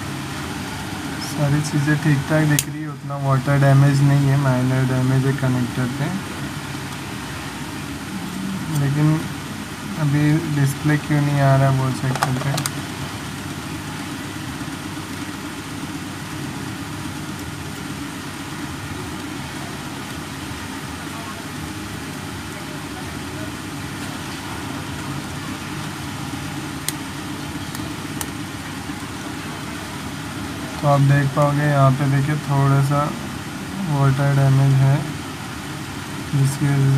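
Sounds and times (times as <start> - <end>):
low mechanical hum: 0.0 - 36.9.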